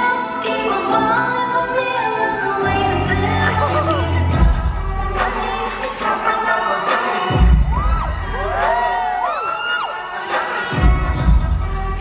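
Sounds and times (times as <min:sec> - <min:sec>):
crowd screaming and cheering: 0:02.6 - 0:12.0
pop backing track bass hits: 0:02.7 - 0:09.2.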